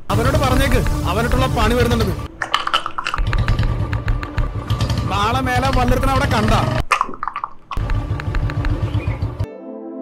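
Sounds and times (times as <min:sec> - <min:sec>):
motorcycle engine idling: 0:03.2 - 0:06.8, 0:07.8 - 0:09.4.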